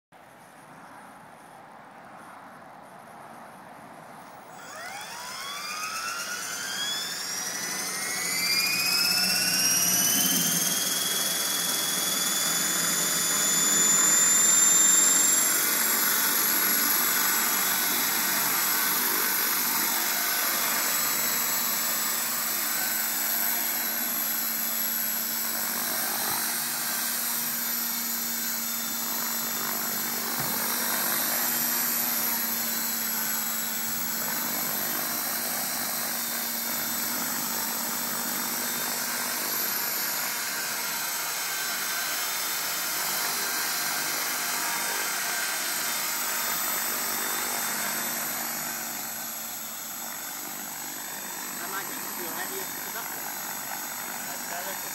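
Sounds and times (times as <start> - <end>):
electric motor whine: 4.4 - 54.9
rotor blade noise: 4.4 - 54.9.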